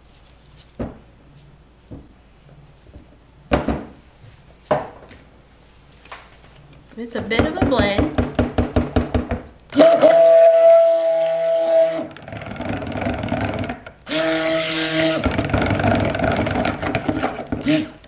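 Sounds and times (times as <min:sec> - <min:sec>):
stick blender whine: 0:09.7 - 0:18.0.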